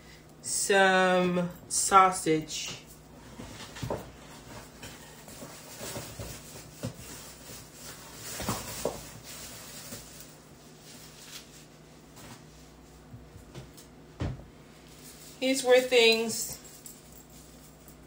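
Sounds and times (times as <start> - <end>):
low steady hum: 0.0 - 18.0
knocks and rustles of handling: 2.6 - 18.0.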